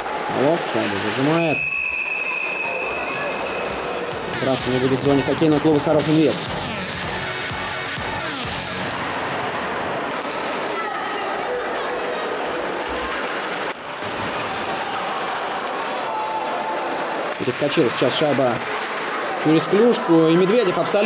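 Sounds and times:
ice hockey arena noise: 0.0 - 21.0.

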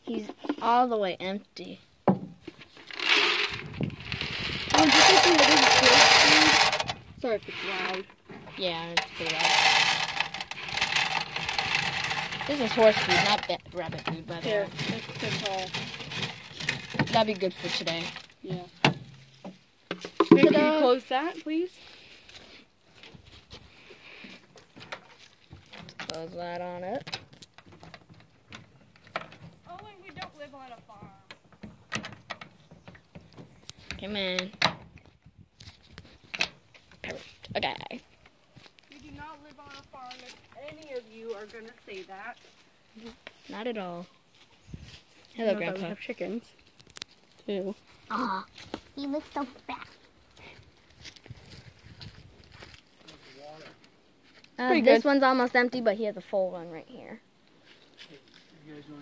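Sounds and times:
pellets pouring into metal feeder: 4.6 - 6.9.

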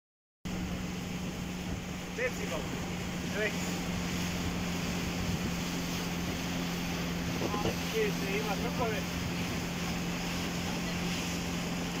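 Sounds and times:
motorboat engine humming: 0.5 - 12.0
water noise: 0.5 - 12.0
wind: 0.5 - 12.0.

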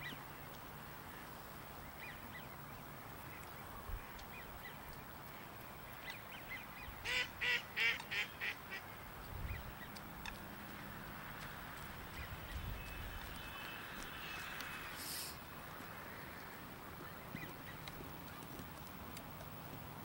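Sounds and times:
outdoor background noise: 0.0 - 20.0
ducks quacking: 7.0 - 8.8.

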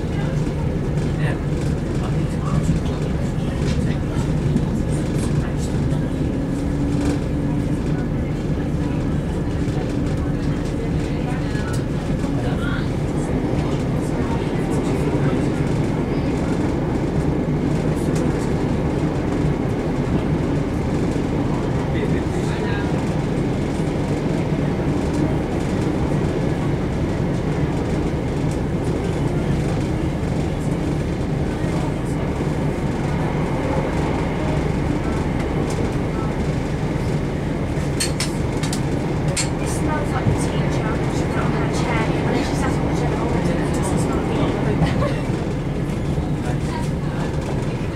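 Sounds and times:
train diesel engine drone: 0.0 - 47.9.

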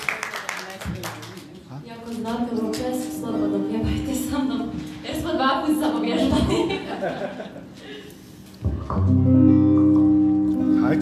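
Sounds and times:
guitar sustained chords: 2.6 - 6.5, 8.7 - 11.0.

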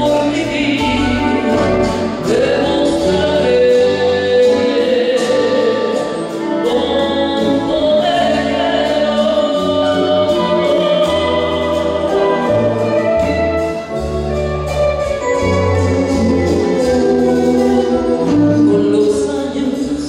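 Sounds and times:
woman singing into microphone: 0.0 - 13.5
live band playing: 0.0 - 20.0.

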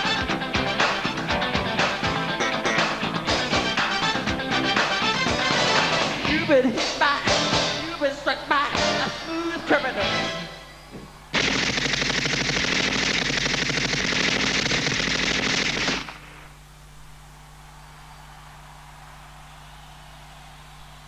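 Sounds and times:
machine-gun fire: 11.3 - 16.5
low steady hum: 16.0 - 21.0.

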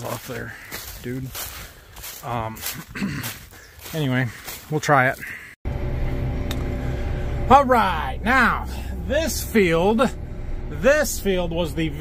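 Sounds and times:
diesel engine droning: 5.6 - 12.0.

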